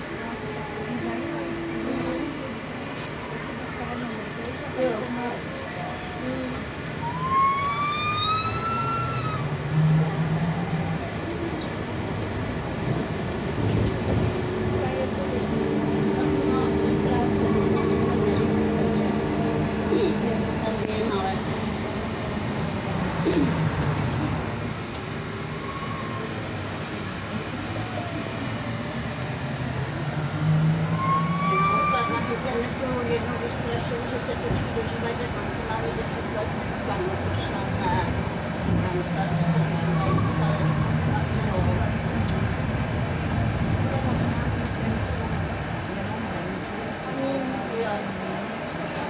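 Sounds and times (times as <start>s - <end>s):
passengers' voices: 0.0s - 49.0s
trolleybus interior running noise: 0.0s - 49.0s.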